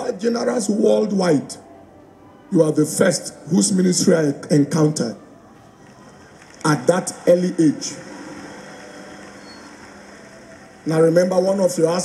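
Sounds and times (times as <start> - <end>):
low hall background noise: 0.0 - 12.0.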